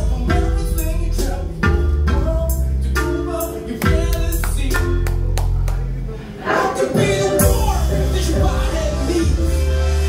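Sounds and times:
drum kit strikes: 0.0s - 5.6s, 7.0s - 9.5s
bass: 0.0s - 10.0s
person singing: 6.3s - 10.0s.

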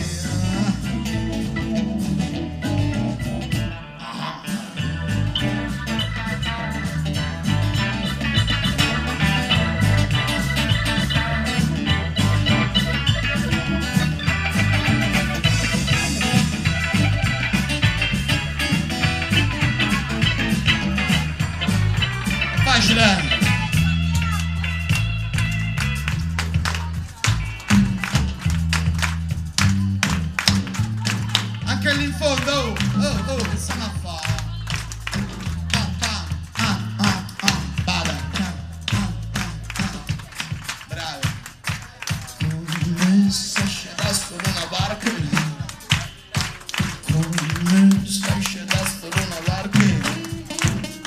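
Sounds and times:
electric guitar rhythm: 0.0s - 51.0s
held bass notes: 0.0s - 51.0s
live band music: 0.0s - 51.0s
hand claps keeping time: 5.0s - 51.0s.

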